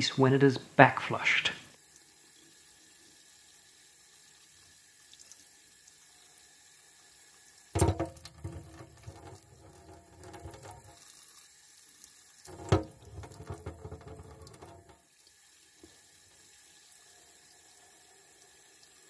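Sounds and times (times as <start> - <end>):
tap water splashing: 7.8 - 11.4, 12.4 - 15.1, 15.8 - 16.0.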